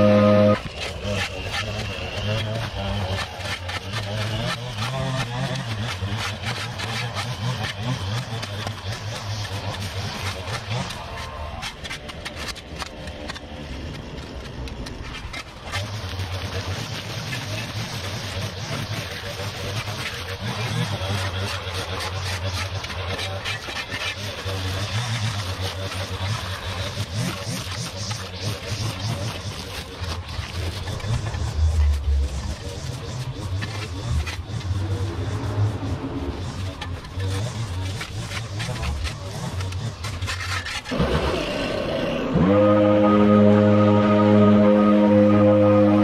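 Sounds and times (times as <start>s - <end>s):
rake scraping through debris: 0.0s - 42.4s
small engine hum: 0.0s - 46.0s.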